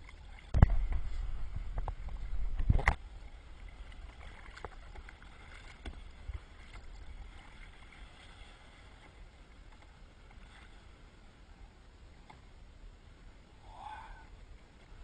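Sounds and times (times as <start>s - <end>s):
low rumble on microphone: 0.0s - 15.0s
water against hull: 0.0s - 15.0s.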